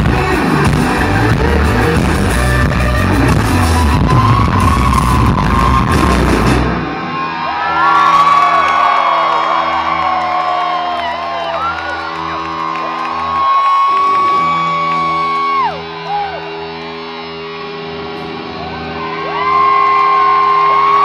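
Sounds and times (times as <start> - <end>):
live rock band playing: 0.0 - 21.0
crowd whooping and cheering: 3.6 - 21.0.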